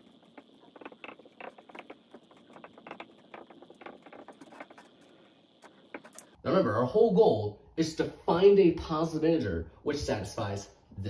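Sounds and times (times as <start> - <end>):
marker squeaking on whiteboard: 0.0 - 6.4.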